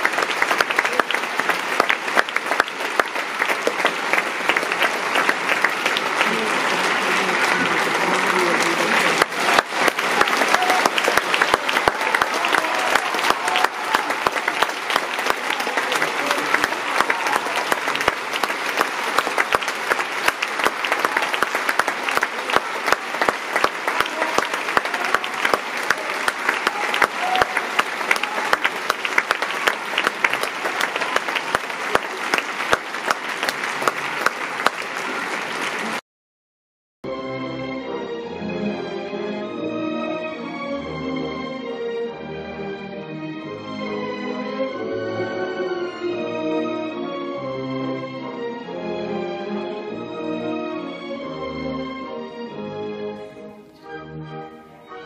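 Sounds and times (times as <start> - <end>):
audience applauding: 0.0 - 36.0
voices in crowd: 3.8 - 18.6, 20.9 - 36.0.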